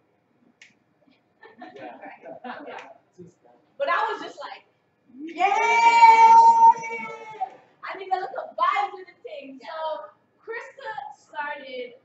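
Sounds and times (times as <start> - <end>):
voices in room: 0.0 - 12.0.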